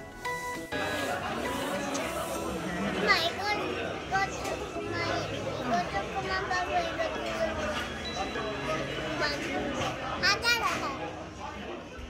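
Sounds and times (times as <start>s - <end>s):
people talking: 0.8s - 12.0s.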